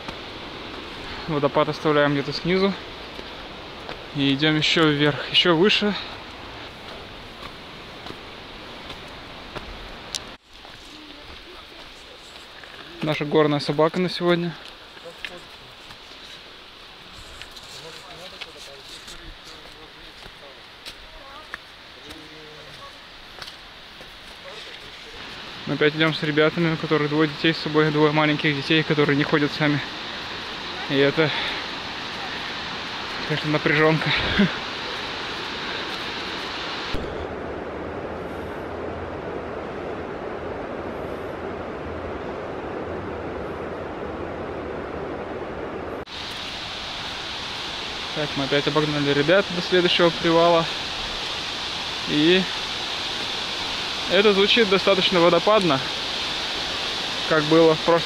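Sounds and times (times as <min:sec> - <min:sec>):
outdoor hiss: 0:00.0 - 0:42.4, 0:45.9 - 0:58.0
steady rushing noise: 0:23.8 - 0:58.0.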